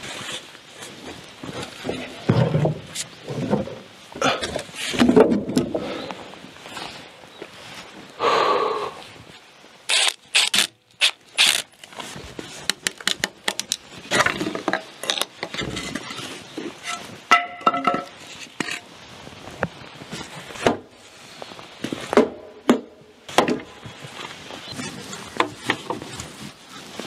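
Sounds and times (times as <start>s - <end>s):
wood and tool knocks and scrapes: 1.6s - 3.8s, 4.8s - 5.8s, 12.6s - 18.8s.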